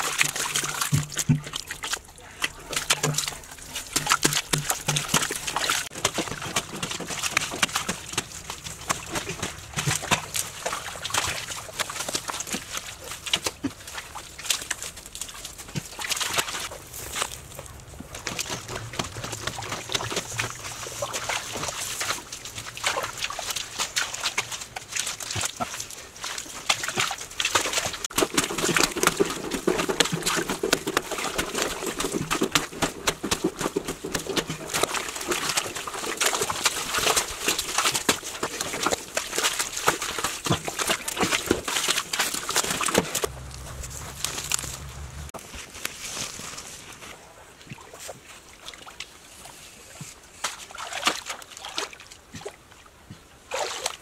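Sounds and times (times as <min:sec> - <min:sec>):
muddy water sloshing and splashing: 0:00.0 - 0:54.0.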